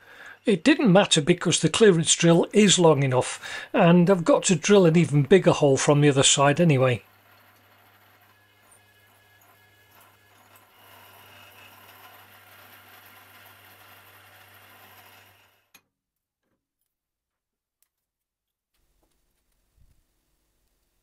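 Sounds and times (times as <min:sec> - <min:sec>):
milling machine motor hum: 0:06.9 - 0:15.7.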